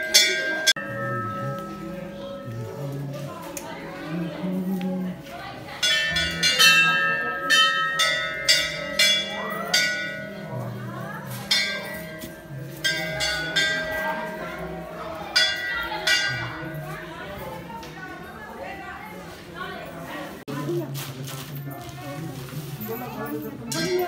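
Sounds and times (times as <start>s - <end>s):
temple bells clanging: 0.0s - 3.4s, 5.7s - 18.4s, 23.6s - 24.0s.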